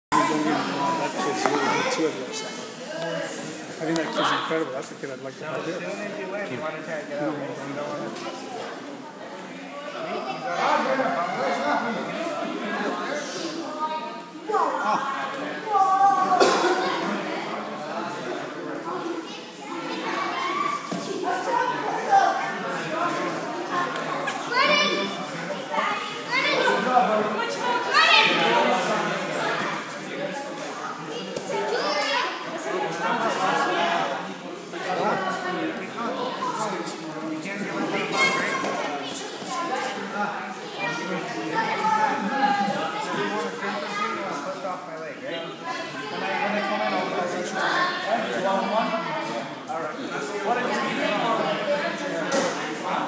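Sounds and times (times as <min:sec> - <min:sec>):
children chattering and calling: 0:00.1 - 0:53.0
children shouting in echoing room: 0:13.6 - 0:17.4, 0:19.2 - 0:22.8, 0:24.4 - 0:29.6, 0:30.9 - 0:32.8.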